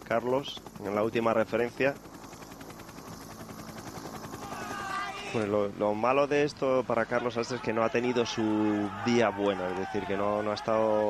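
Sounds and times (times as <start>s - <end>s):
wavering shouts or whistles: 4.3s - 5.4s, 7.2s - 11.0s.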